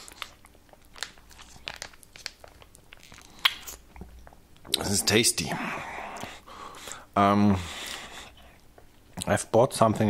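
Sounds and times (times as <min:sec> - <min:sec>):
plastic pouch crinkling: 0:00.0 - 0:03.8
soft mouth sounds: 0:02.9 - 0:06.5.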